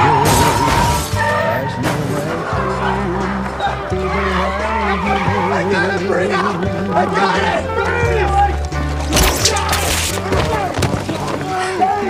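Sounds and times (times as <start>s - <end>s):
background music: 0.0s - 12.0s
body thudding on ground: 9.1s - 11.6s.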